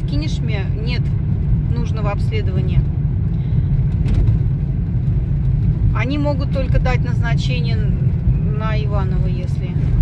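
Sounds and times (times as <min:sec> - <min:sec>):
car engine rumble: 0:00.0 - 0:10.0
tyres on road: 0:00.0 - 0:10.0.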